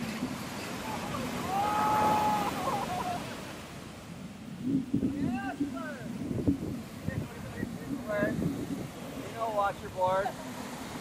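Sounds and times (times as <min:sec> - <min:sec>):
waves crashing on sand: 0:00.0 - 0:11.0
person whooping: 0:01.4 - 0:03.3.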